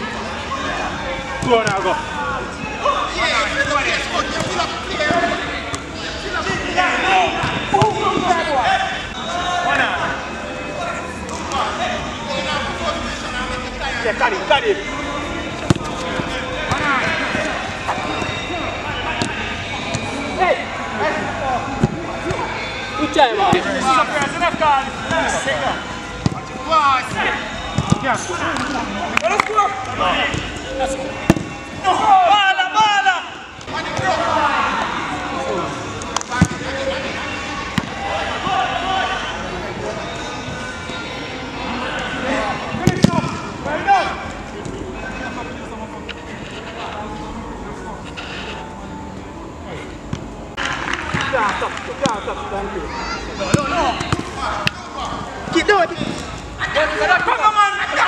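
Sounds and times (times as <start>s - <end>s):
players shouting: 0.1s - 45.6s, 50.6s - 58.0s.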